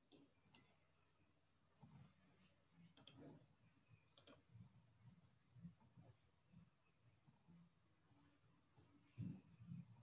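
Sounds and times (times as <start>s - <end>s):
faint clicks: 2.9s - 3.3s, 4.1s - 4.5s.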